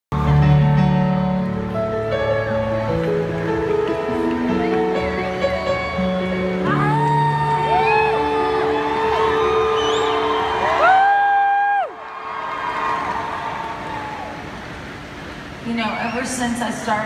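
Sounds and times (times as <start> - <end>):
keyboard chords: 0.1 - 11.5
crowd screaming and whooping: 4.5 - 14.8.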